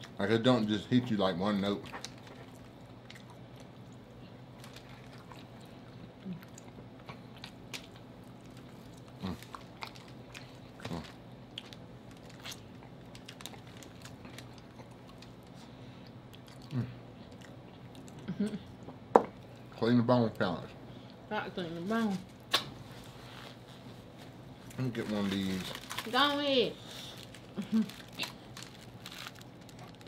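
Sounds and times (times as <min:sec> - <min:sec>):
faint low hum: 0:00.0 - 0:30.0
chewing and wet mouth clicks: 0:16.0 - 0:18.2.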